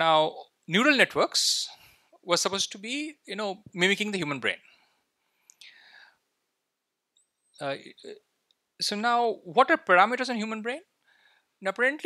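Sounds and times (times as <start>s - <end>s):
breath into microphone: 4.6s - 6.3s, 11.0s - 11.6s.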